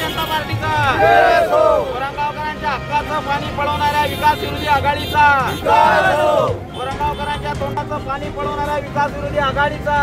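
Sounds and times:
men shouting slogans: 0:00.7 - 0:02.2, 0:05.2 - 0:06.6.

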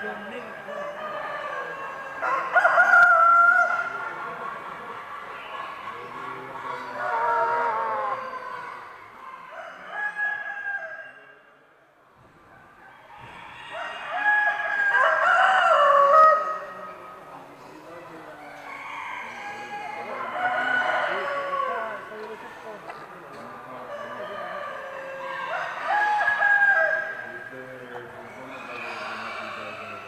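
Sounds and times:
roosters crowing: 0:00.0 - 0:04.4, 0:05.3 - 0:11.5, 0:12.9 - 0:17.2, 0:18.4 - 0:22.8, 0:23.6 - 0:30.0.

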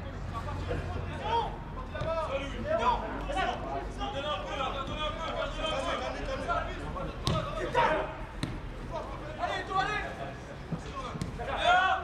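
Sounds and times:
players shouting: 0:00.3 - 0:12.0.

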